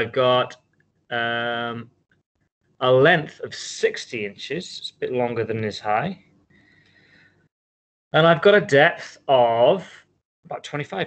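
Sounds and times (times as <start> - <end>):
man's voice: 0.0 - 1.8, 2.8 - 6.2, 8.2 - 11.0.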